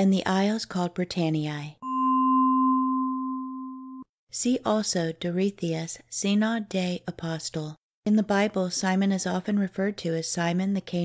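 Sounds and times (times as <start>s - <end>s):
ringing tone: 1.8s - 4.1s.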